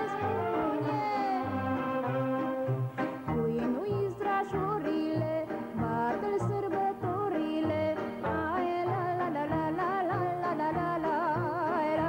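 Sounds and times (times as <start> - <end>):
band with bass and chords: 0.0 - 12.0
woman singing folk song: 0.0 - 12.0.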